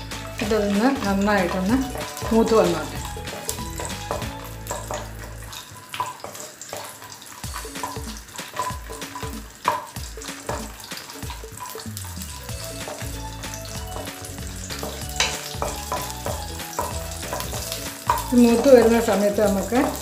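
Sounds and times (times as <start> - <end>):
nuts sizzling in a wok: 0.0 - 20.0
spatula scraping a pan: 13.9 - 19.1.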